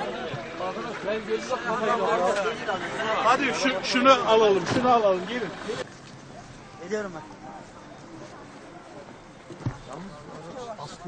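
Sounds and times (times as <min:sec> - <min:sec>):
faint voices: 0:00.0 - 0:11.0
dull thump: 0:09.5 - 0:09.9.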